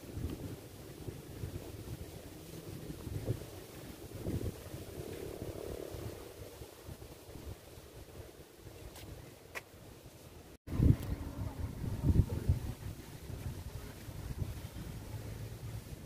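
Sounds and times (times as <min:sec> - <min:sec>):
wind blowing on microphone: 0:00.0 - 0:09.4, 0:10.7 - 0:16.0.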